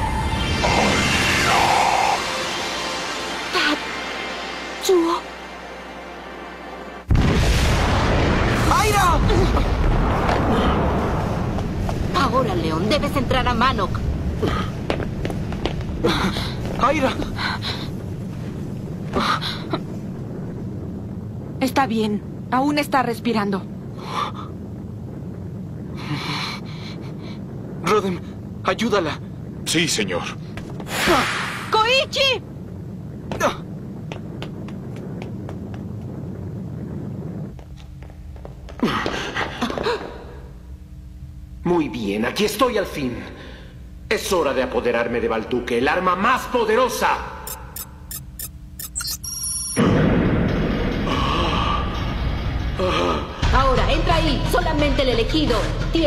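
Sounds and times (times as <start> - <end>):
dramatic music: 0.0 - 7.9
low background rumble: 1.5 - 47.1.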